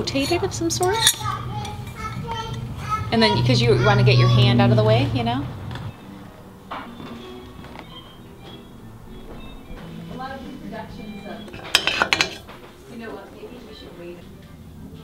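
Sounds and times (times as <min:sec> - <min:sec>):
hard objects clinking: 0:00.2 - 0:02.7, 0:11.1 - 0:12.8.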